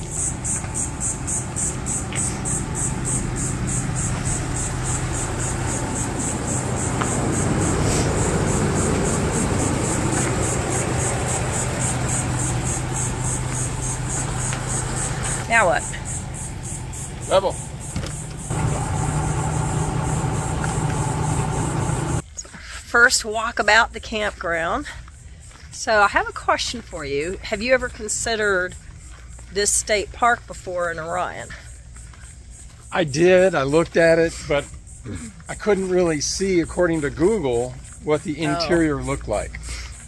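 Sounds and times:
motor hum: 0:00.0 - 0:22.2.

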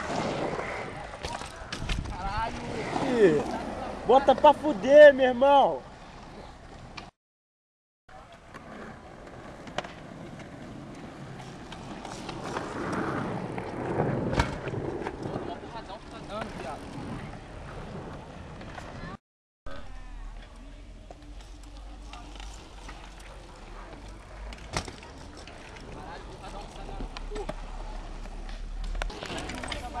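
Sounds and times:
bike tyres rolling on pavement: 0:00.0 - 0:06.9, 0:08.2 - 0:19.2, 0:20.8 - 0:30.0.

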